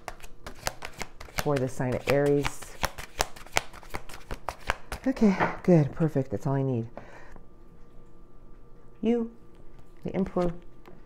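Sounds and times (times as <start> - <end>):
cards being shuffled: 0.0 - 5.1.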